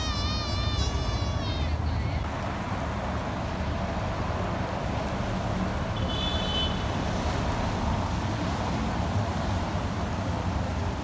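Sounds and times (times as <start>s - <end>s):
road traffic on wet road: 0.0s - 11.0s.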